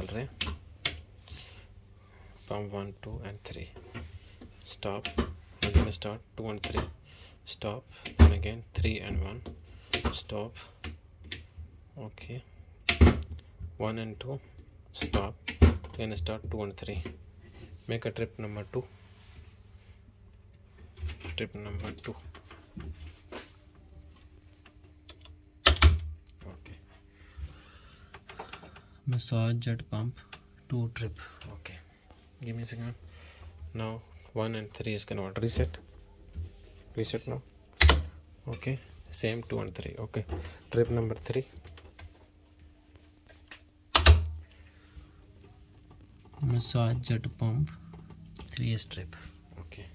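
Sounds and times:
low steady hum with hiss: 0:00.0 - 0:49.9.

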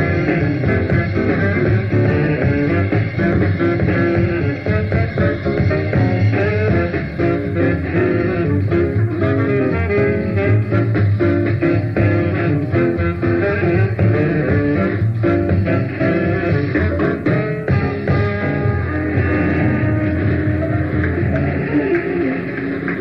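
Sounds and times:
jazz band playing: 0:00.0 - 0:23.0.

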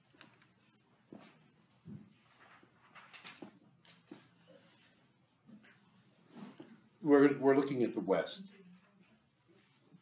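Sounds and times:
knocks taps and rustles at a desk: 0:00.0 - 0:04.4.

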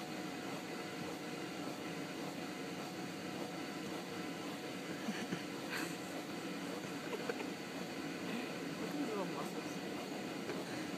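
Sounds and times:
blower fan rushing air: 0:00.0 - 0:10.9.

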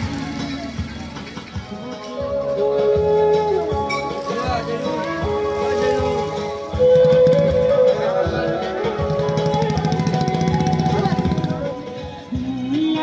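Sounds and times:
music with fast rhythmic pulse: 0:00.0 - 0:13.0.

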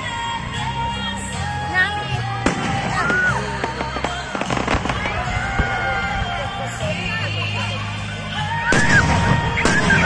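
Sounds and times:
crowd voices: 0:00.0 - 0:10.0
music: 0:00.0 - 0:10.0
fireworks popping and crackling: 0:02.3 - 0:06.8, 0:08.7 - 0:10.0.

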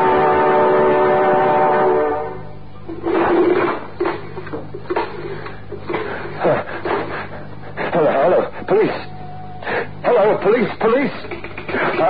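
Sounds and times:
low radio hum: 0:00.0 - 0:12.0.

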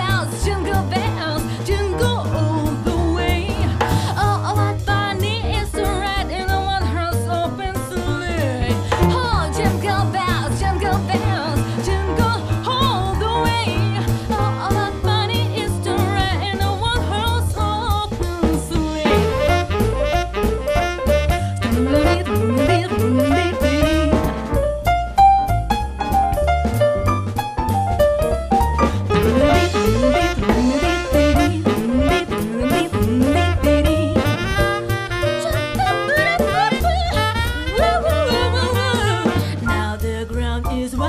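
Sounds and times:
upbeat pop song: 0:00.0 - 0:24.4, 0:28.5 - 0:41.0
drum kit and bass: 0:00.0 - 0:41.0
saxophones: 0:29.1 - 0:39.8
person singing: 0:31.0 - 0:34.5.

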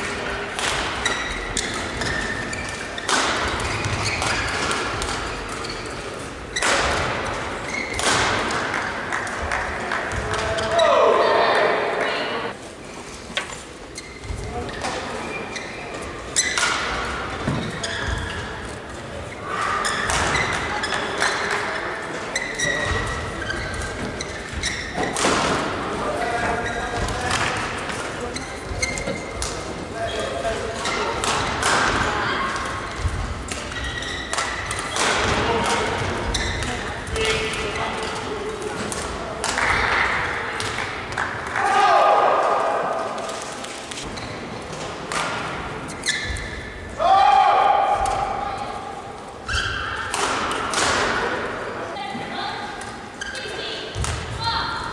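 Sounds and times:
shoes squeaking on court: 0:00.6 - 0:08.1, 0:12.3 - 0:25.3, 0:26.1 - 0:27.3, 0:27.9 - 0:31.4, 0:32.2 - 0:38.8, 0:43.3 - 0:44.9, 0:45.8 - 0:46.9, 0:49.4 - 0:50.1, 0:52.3 - 0:54.6
racket striking shuttlecock: 0:07.9 - 0:10.5
loud shouts: 0:10.6 - 0:12.6, 0:41.5 - 0:43.1, 0:47.0 - 0:48.9.

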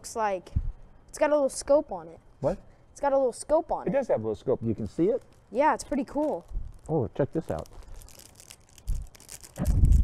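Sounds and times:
packets crinkling and tearing: 0:05.0 - 0:10.0.

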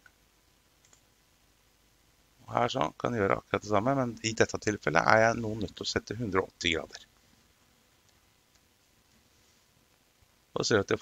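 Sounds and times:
computer mouse click: 0:00.8 - 0:01.1.

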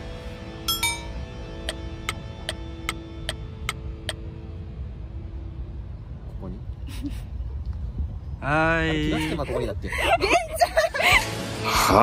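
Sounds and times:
low steady rumble: 0:00.0 - 0:11.4.

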